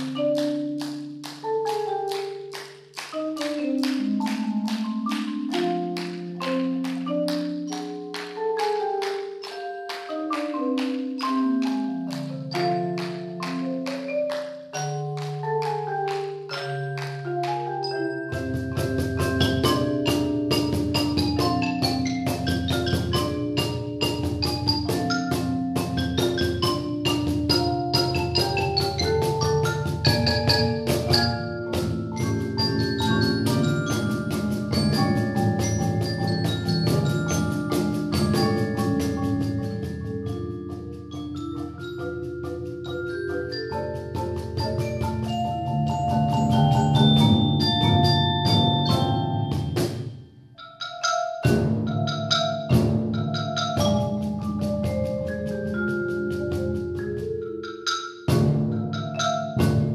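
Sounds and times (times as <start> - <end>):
marimba ensemble playing: 0.0 - 59.9.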